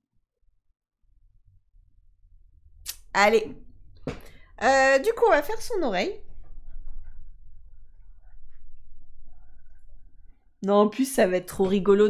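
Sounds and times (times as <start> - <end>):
low hum: 1.1 - 12.0
woman speaking: 2.9 - 3.6, 4.6 - 6.2, 10.6 - 12.0.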